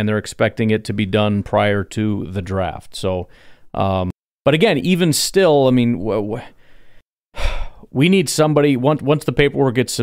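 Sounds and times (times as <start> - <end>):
man speaking: 0.0 - 6.6, 7.8 - 10.0
breath in: 3.3 - 3.7, 6.5 - 7.9.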